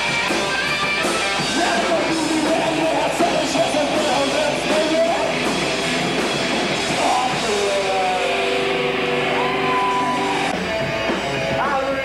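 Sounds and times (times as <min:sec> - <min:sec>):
rockabilly band playing loudly: 0:00.0 - 0:12.0.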